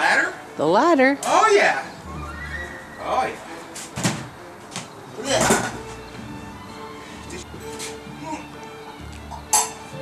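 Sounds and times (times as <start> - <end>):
metal ladder clattering on wood: 5.2 - 6.0.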